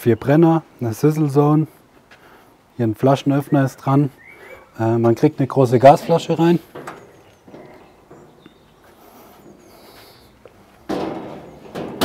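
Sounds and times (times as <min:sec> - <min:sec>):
sheet-metal cabinet doors handled: 0:10.9 - 0:12.0.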